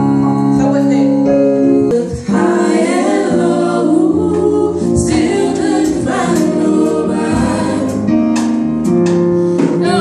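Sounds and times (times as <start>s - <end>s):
women singing in harmony: 1.8s - 8.3s, 9.6s - 10.0s.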